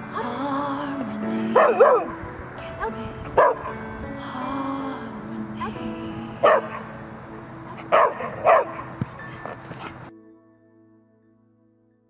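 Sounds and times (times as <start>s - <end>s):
background music: 0.0s - 12.0s
dog barking: 1.6s - 2.1s, 3.4s - 3.8s, 6.4s - 6.8s, 7.8s - 8.9s.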